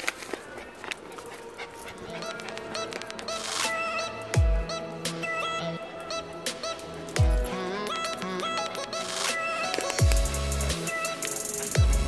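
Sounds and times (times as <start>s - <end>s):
dog panting: 0.3s - 3.6s.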